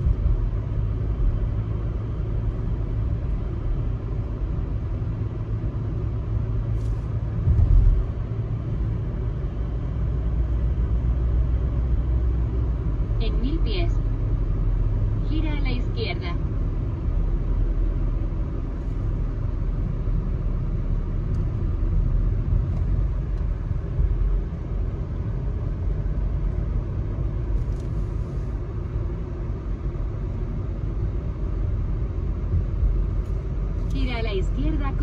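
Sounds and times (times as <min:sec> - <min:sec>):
car road and engine rumble: 0:00.0 - 0:35.0.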